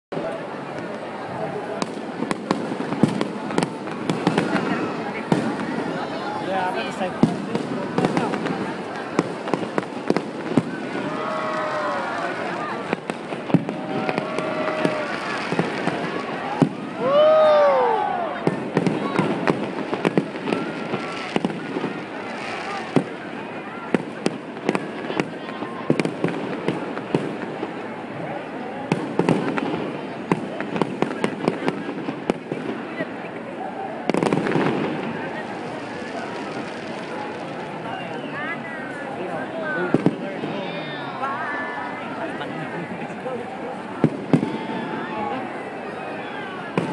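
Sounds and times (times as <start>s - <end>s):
crowd voices calling out: 0.1s - 46.9s
fireworks pops and crackles: 0.2s - 17.8s, 18.4s - 33.4s, 34.0s - 38.6s, 39.4s - 40.8s, 43.7s - 45.0s, 46.7s - 46.9s
fireworks bursting: 0.2s - 46.9s.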